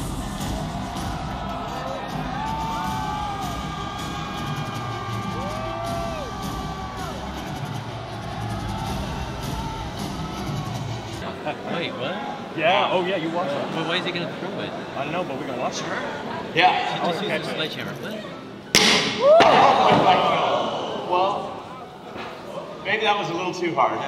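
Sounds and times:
crowd cheering and whooping: 0.0 - 11.2, 19.1 - 21.1.

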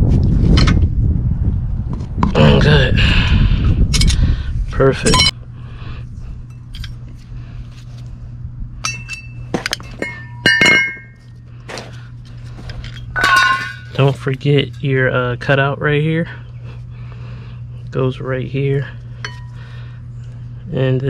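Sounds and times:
low steady hum: 0.0 - 21.0
rough handling noise: 6.4 - 8.2, 8.8 - 15.1
metal hand tools clinking: 8.8 - 11.2, 12.6 - 14.9.

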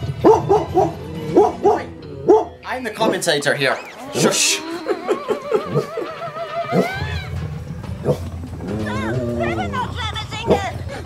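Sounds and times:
background music: 0.0 - 11.0
cartoon creatures yipping: 1.5 - 10.8.

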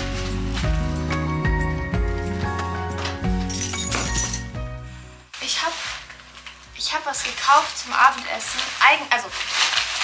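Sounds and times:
shopping bag rustling: 0.0 - 1.1, 5.4 - 10.0.

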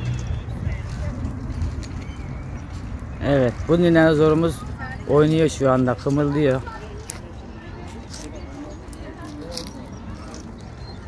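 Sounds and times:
faint indistinct voices: 0.0 - 11.0
low outdoor rumble: 0.0 - 11.0.

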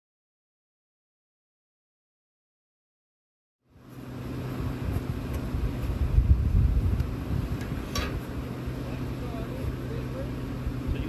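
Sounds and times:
truck engine idling: 3.7 - 11.0
wind buffeting microphone: 4.7 - 8.4.

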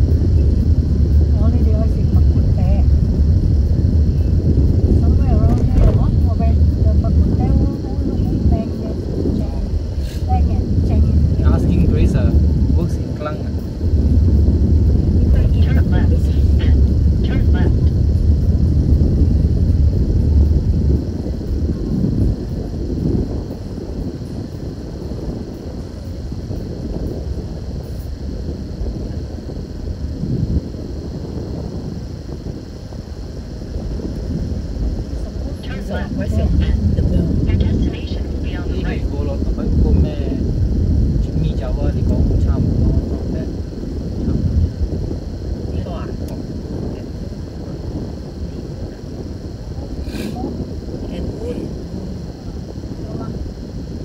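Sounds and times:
car engine and tyre rumble: 0.0 - 52.6.

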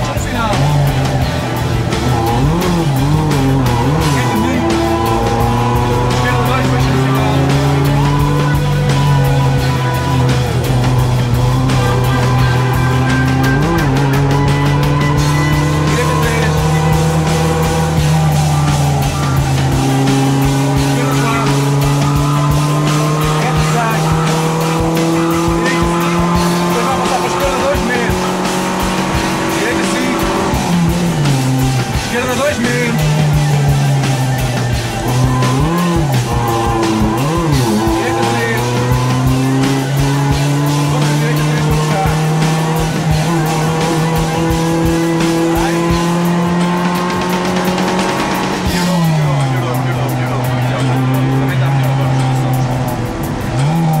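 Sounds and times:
car engine pulling under load: 0.0 - 54.0.

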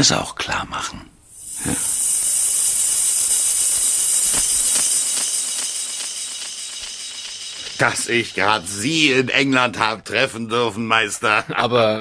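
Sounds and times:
high-pitched hiss: 1.2 - 9.7.

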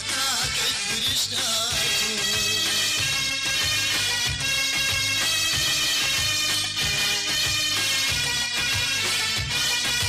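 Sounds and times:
instrumental pop music: 0.0 - 10.0.

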